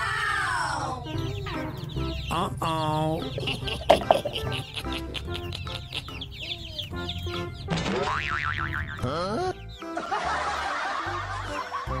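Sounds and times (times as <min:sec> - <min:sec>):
snickering laughter: 0:03.3 - 0:06.3, 0:09.9 - 0:12.0.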